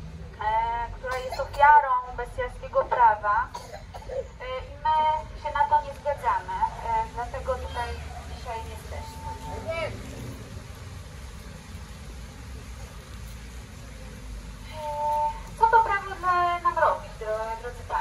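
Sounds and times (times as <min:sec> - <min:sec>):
woman speaking through megaphone: 0:00.4 - 0:10.0, 0:14.7 - 0:18.0.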